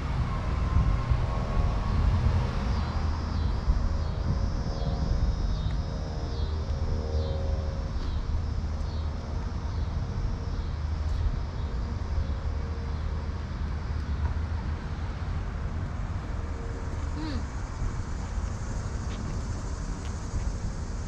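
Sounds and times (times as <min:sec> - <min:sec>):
low street rumble: 0:00.0 - 0:21.0.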